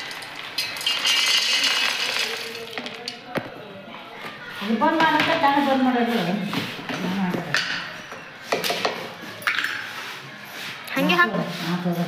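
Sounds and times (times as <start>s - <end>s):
nuts rattling into metal jar: 0.0s - 3.2s.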